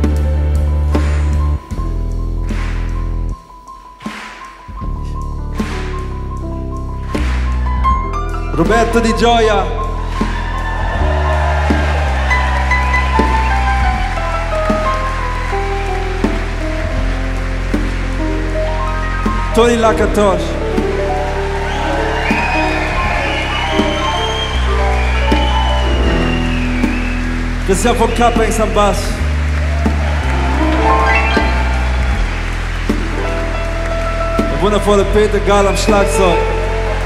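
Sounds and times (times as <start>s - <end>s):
upright bass low notes: 4.8s - 37.0s
sustained keyboard chords: 12.2s - 35.5s
electric bass notes: 29.1s - 35.4s
high keyboard melody notes: 30.2s - 34.5s
sustained chords: 30.3s - 33.7s.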